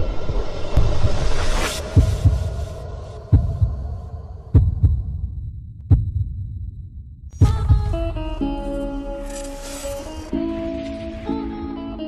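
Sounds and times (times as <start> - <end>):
low hum: 0.0 - 11.9
heartbeat thumps: 1.8 - 8.4.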